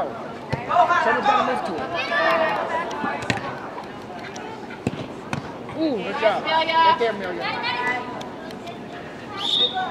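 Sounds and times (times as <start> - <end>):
soccer ball kick thumps: 3.1 - 3.5.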